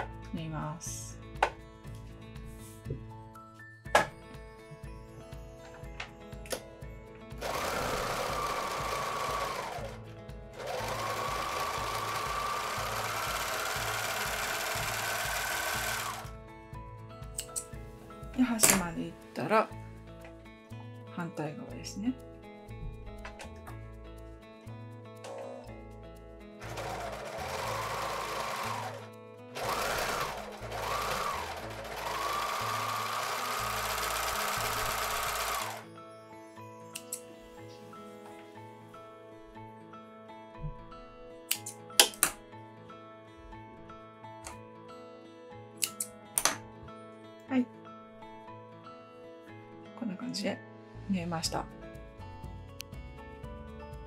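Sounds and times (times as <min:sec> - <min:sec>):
background music: 0:00.0 - 0:54.0
overlock sewing machine stitching: 0:07.4 - 0:10.0, 0:10.6 - 0:16.3, 0:26.6 - 0:35.8.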